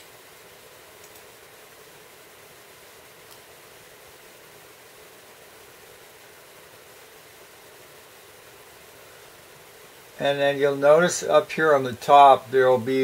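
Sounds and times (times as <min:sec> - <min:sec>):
faint steady hiss: 0:00.0 - 0:13.0.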